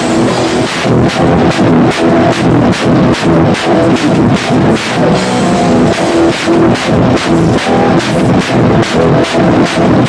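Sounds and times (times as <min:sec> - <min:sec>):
drum kit fast beat: 0:00.0 - 0:10.0
electronic music: 0:00.0 - 0:10.0.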